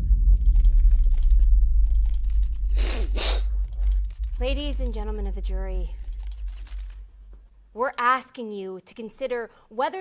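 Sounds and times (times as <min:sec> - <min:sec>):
deep low rumble: 0:00.0 - 0:07.8.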